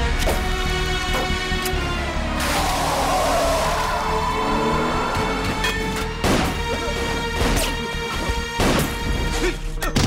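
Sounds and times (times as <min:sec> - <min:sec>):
tense music score: 0:00.0 - 0:10.0.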